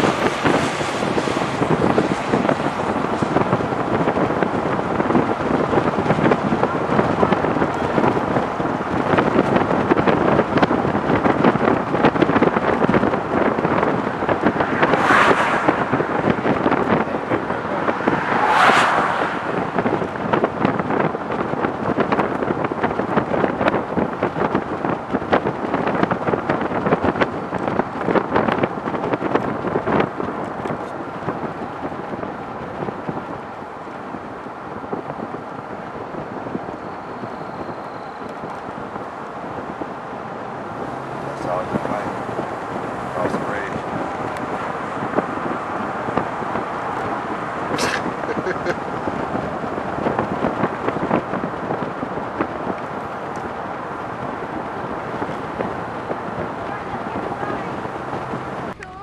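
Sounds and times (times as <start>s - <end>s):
vehicle road noise: 0.0s - 59.0s
wind buffeting microphone: 0.0s - 59.0s.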